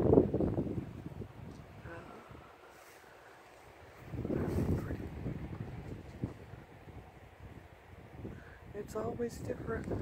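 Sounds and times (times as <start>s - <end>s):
wind buffeting microphone: 0.0s - 2.7s, 3.6s - 10.0s.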